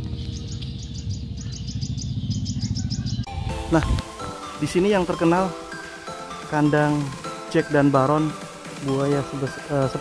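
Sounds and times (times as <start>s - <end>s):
small bird chirping rapidly: 0.0s - 3.5s
low rumble: 0.0s - 4.1s
melodic music: 3.2s - 10.0s.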